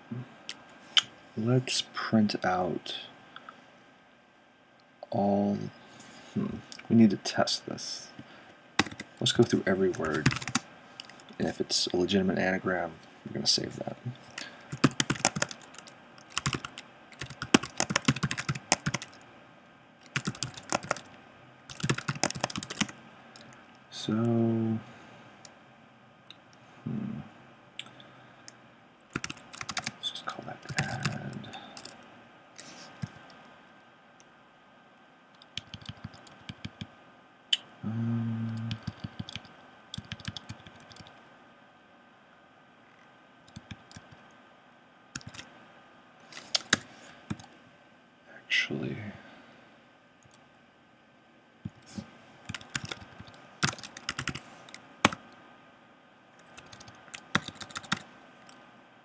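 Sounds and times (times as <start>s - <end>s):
low steady hum: 0.0s - 59.0s
typing on computer keyboard: 8.8s - 9.1s, 9.9s - 11.2s, 14.4s - 19.2s, 20.0s - 21.1s, 21.7s - 23.6s, 29.1s - 29.9s, 30.7s - 32.0s, 35.4s - 36.9s, 38.5s - 41.1s, 43.5s - 44.2s, 45.2s - 45.4s, 52.5s - 55.2s, 56.4s - 58.0s.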